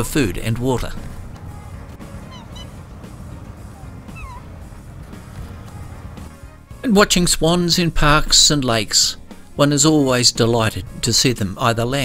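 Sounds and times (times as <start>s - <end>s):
swans honking: 0.9s - 6.7s.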